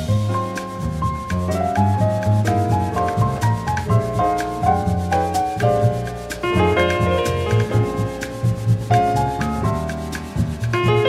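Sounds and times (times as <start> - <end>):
low bass line: 0.0 - 11.0
piano playing melody and chords: 0.0 - 11.0.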